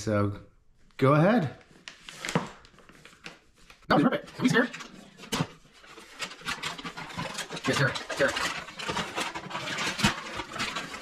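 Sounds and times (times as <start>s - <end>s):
wrapping paper tearing and rustling: 1.6s - 11.0s.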